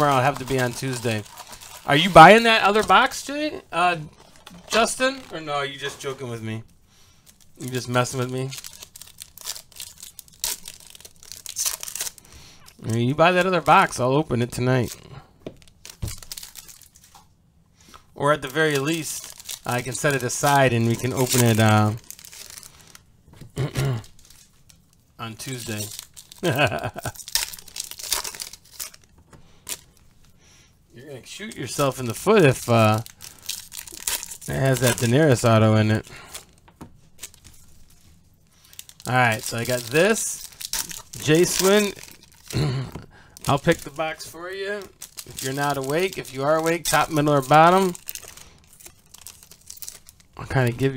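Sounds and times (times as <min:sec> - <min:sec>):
foil wrappers crinkling: 0:00.0 - 0:17.2, 0:18.2 - 0:23.1, 0:24.0 - 0:30.3, 0:31.2 - 0:50.9.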